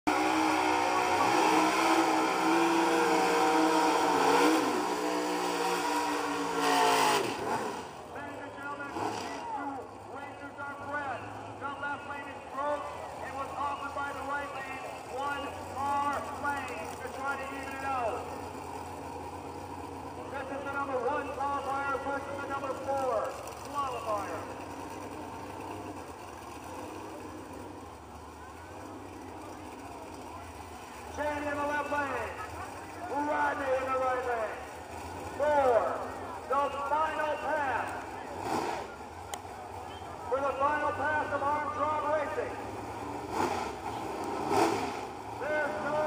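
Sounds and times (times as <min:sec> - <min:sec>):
engine revving hard: 0:00.1 - 0:08.0, 0:08.8 - 0:09.4, 0:38.3 - 0:39.0, 0:42.8 - 0:46.0
engines idling low: 0:00.1 - 0:46.0
crowd talking: 0:00.6 - 0:03.5, 0:08.0 - 0:43.2, 0:45.2 - 0:46.0.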